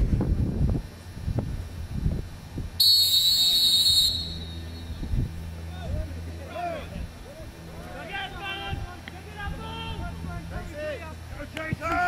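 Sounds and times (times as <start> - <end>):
referee's whistle blast: 2.8 - 5.0.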